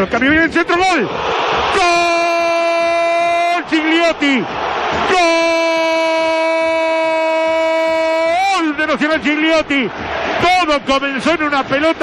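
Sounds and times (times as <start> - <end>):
commentator talking rapidly: 0.0 - 1.1, 1.8 - 4.5, 5.1 - 12.0.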